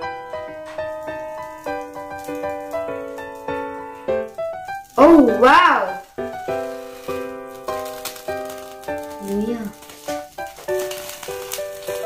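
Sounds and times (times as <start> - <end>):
piano melody: 0.0 - 12.0.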